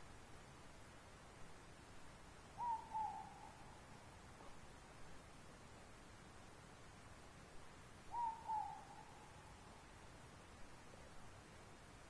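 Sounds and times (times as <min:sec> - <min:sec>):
faint background hiss: 0:00.0 - 0:12.0
owl hooting: 0:02.6 - 0:03.8, 0:08.1 - 0:09.5.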